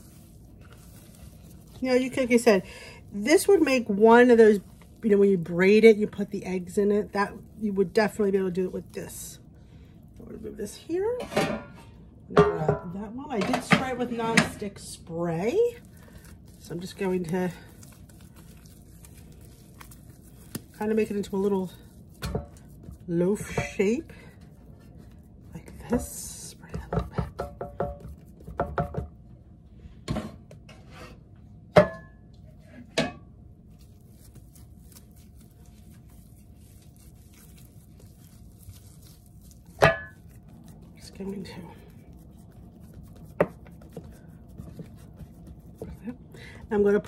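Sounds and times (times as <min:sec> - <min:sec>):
dough being squeezed by hand: 0:00.0 - 0:10.3, 0:14.7 - 0:29.1, 0:33.6 - 0:47.0.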